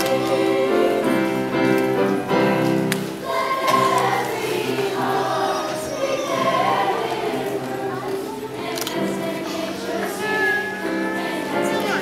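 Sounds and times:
youth choir singing: 0.0s - 12.0s.

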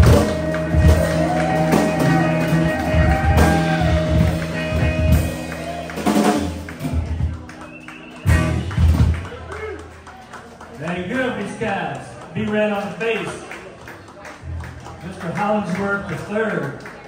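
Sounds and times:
drum kit hits: 0.0s - 7.5s, 8.3s - 9.3s
electric bass notes: 0.0s - 9.6s
electric guitar: 0.0s - 9.9s.

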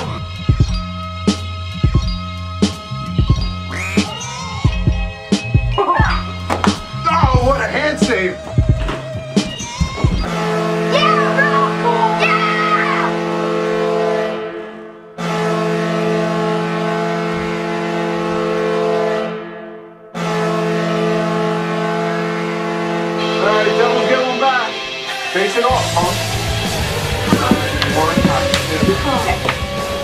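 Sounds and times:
music: 0.0s - 30.0s
goal horn blasts: 10.2s - 24.8s, 25.8s - 30.0s
voices: 23.4s - 29.9s.

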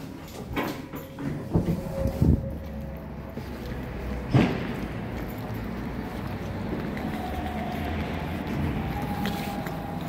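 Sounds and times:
low rumble echoing: 1.5s - 10.0s.

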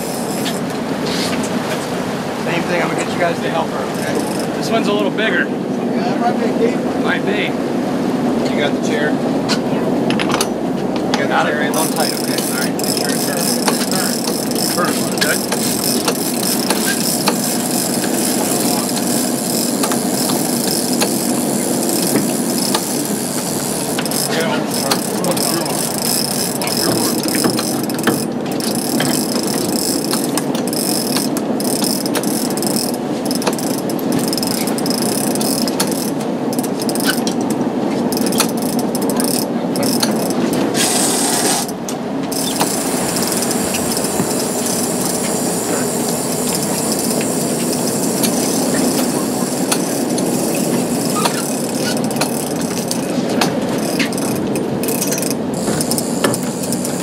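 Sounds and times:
boat running noise: 0.0s - 57.0s
sea: 0.0s - 57.0s
fishing reel gears clicking: 3.9s - 4.6s, 11.7s - 53.1s, 53.8s - 57.0s.

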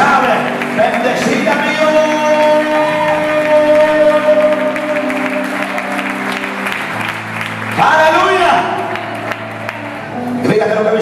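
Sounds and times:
band playing sustained chords: 0.0s - 11.0s
congregation applauding: 0.0s - 11.0s.

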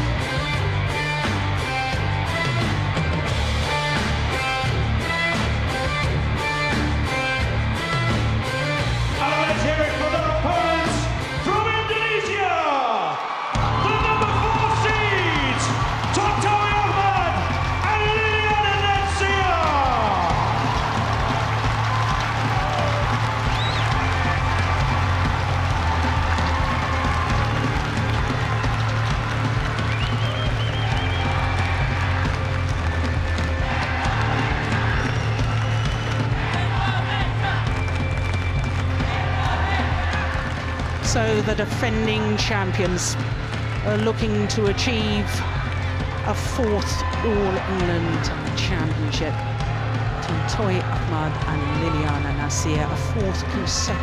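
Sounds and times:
loud walk-out music with beat: 0.0s - 12.6s, 13.5s - 54.0s.

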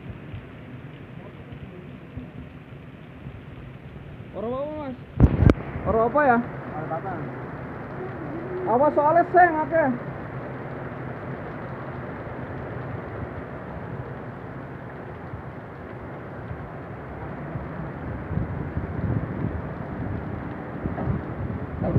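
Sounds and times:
heavy rain: 0.0s - 21.9s
storm wind: 0.0s - 21.9s
wind gusts buffeting microphone: 1.4s - 21.9s.

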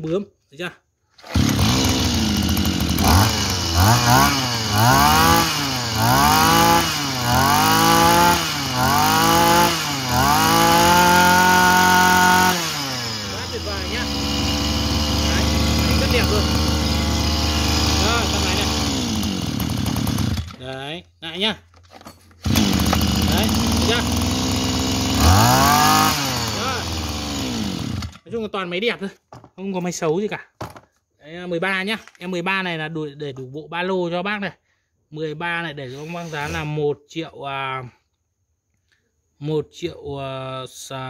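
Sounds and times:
brush cutter engine starting: 1.1s - 21.0s, 22.3s - 28.4s, 35.8s - 36.8s
brush cutter engine revving: 1.2s - 20.8s, 22.4s - 28.3s, 35.8s - 36.8s
brush cutter engine idling: 1.2s - 20.9s, 22.4s - 28.3s.

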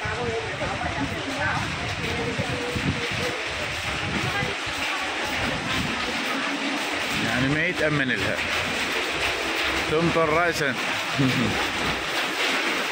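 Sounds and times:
people's voices in background: 0.0s - 8.6s
rain hissing: 0.0s - 12.9s.

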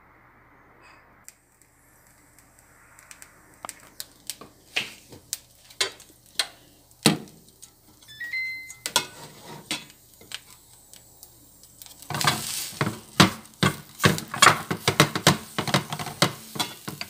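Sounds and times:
high stepped electronic tone: 8.1s - 8.9s
clicks and taps around frying pan: 12.0s - 17.0s.

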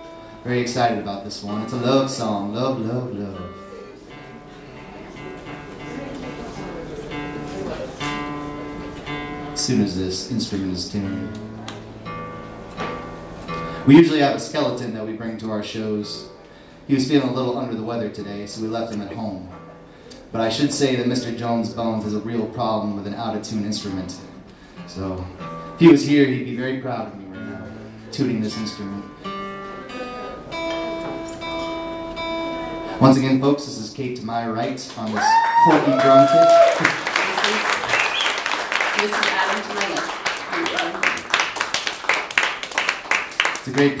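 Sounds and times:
acoustic guitar string ringing: 11.1s - 13.8s, 27.4s - 33.0s.

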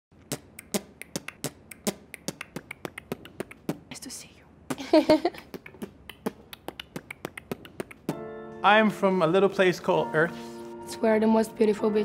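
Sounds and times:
percussive clicks and snaps: 0.2s - 3.9s, 5.4s - 8.2s.

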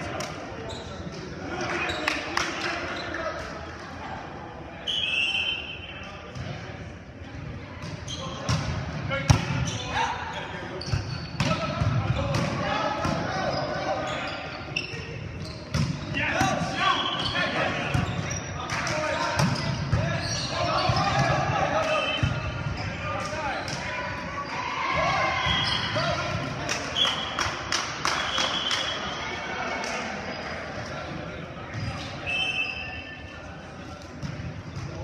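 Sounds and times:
players shouting calls: 16.0s - 30.7s.

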